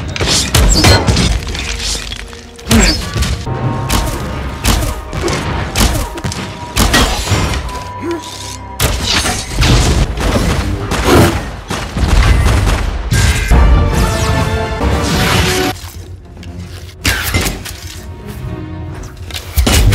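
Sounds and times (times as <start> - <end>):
action film score: 0.0 - 19.9.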